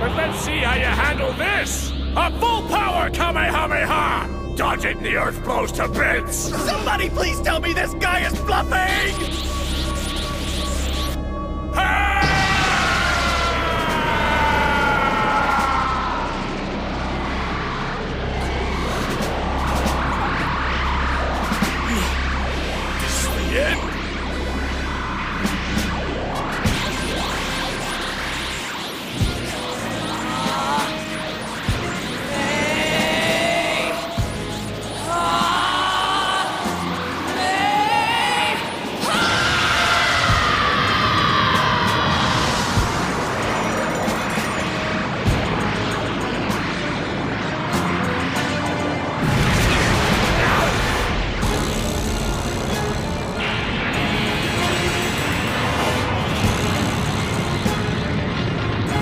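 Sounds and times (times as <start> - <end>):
dramatic background music: 0.0 - 59.0
high whine gliding down: 0.0 - 59.0
energy beam blast rushing: 6.9 - 35.1, 40.8 - 59.0
long scream falling in pitch: 11.8 - 16.4.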